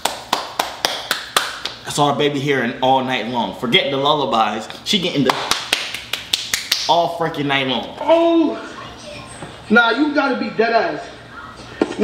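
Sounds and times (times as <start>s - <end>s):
quick hand claps: 0.0s - 1.8s, 5.3s - 7.0s.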